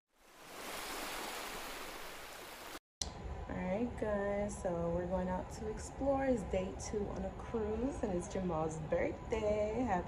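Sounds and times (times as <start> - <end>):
ocean surf rushing: 0.2 - 2.8.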